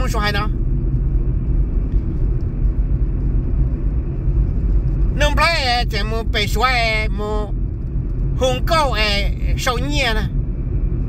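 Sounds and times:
car road rumble inside cabin: 0.0s - 11.0s.

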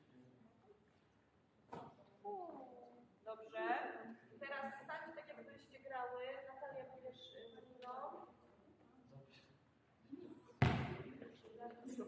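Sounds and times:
volleyball smack echoing: 10.6s - 11.1s.

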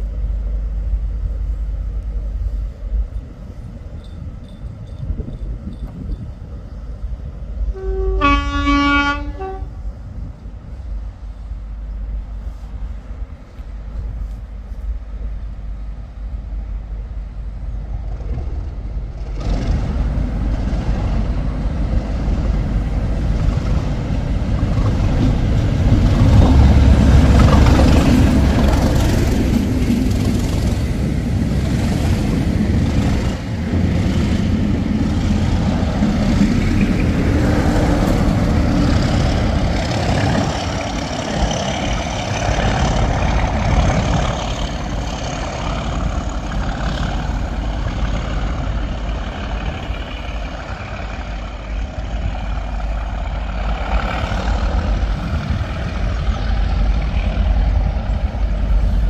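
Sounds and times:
diesel locomotive engine rumbling: 0.0s - 59.0s
train wheels clacking: 3.0s - 6.5s, 18.0s - 59.0s.

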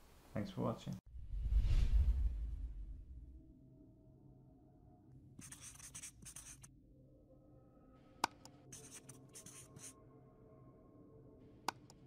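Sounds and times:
marker scratching on paper: 5.4s - 6.7s, 8.7s - 10.0s.

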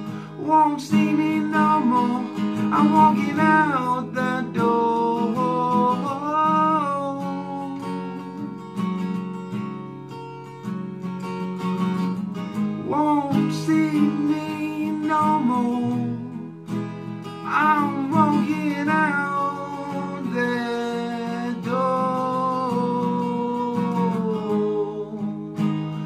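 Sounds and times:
acoustic guitar strumming: 0.0s - 26.0s
man singing long notes: 0.4s - 8.2s, 12.9s - 16.4s, 17.5s - 25.6s.

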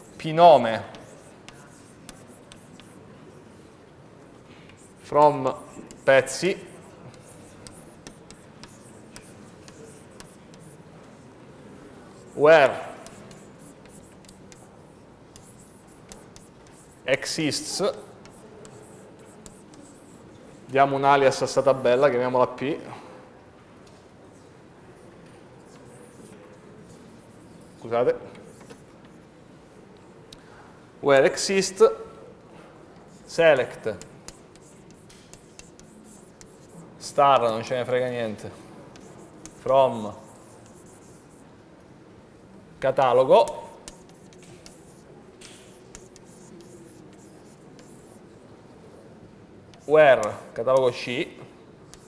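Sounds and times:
chalk tapping board: 0.0s - 3.1s, 4.5s - 11.3s, 12.1s - 20.7s, 25.6s - 29.2s, 33.0s - 41.5s, 42.9s - 48.3s, 49.7s - 51.1s
chalk scratching on blackboard: 0.0s - 3.5s, 4.6s - 11.4s, 12.1s - 21.8s, 25.6s - 29.2s, 33.0s - 41.5s, 42.9s - 48.5s, 49.7s - 51.2s.

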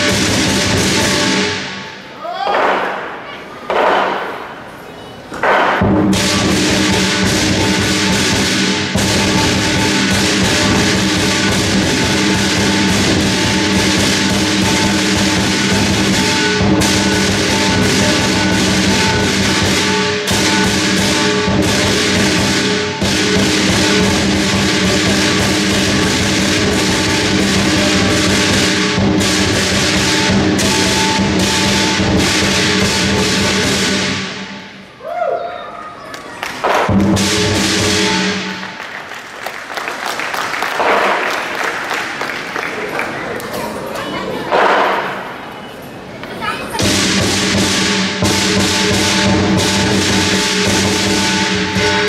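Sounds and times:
drum: 0.0s - 1.9s, 5.7s - 34.7s, 36.6s - 38.8s, 46.8s - 52.0s
cymbals: 0.0s - 4.7s, 5.4s - 35.2s, 36.6s - 39.2s, 46.7s - 52.0s
gong: 5.9s - 34.8s, 36.9s - 38.8s, 47.0s - 52.0s.

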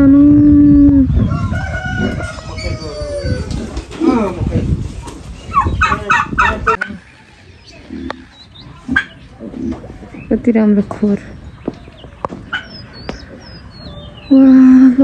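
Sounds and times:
rooster crowing: 1.3s - 3.5s
loud fowl calls: 5.5s - 7.1s.

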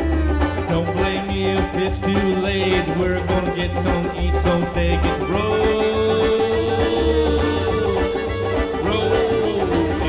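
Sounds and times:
bass guitar: 0.0s - 10.0s
fiddle long sliding note: 0.0s - 10.0s
hand drum: 0.0s - 10.0s.

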